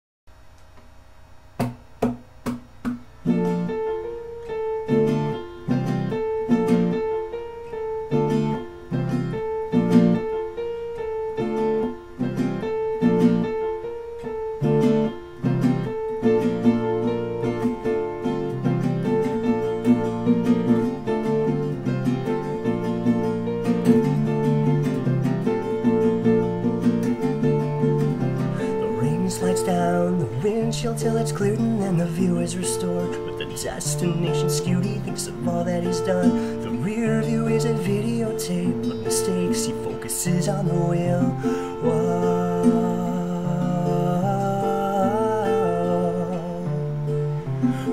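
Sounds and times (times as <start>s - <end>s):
acoustic guitar strumming: 1.6s - 47.9s.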